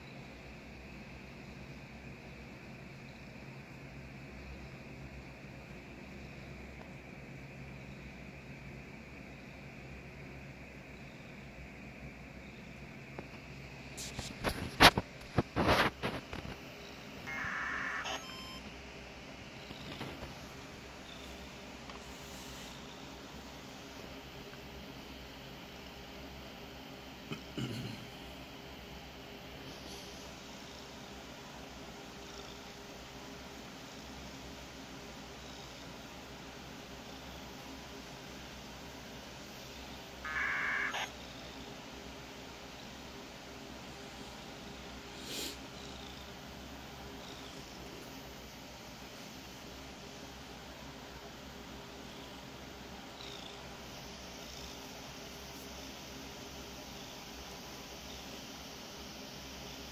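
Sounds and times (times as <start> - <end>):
buzzy electronic burst: 17.3 - 18.6, 40.3 - 41.1
cat sound: 17.3 - 18.6, 40.2 - 41.2.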